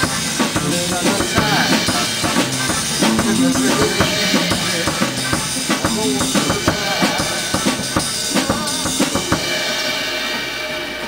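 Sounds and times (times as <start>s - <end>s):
drum kit playing: 0.0s - 11.0s
recorded blues song: 0.0s - 11.0s.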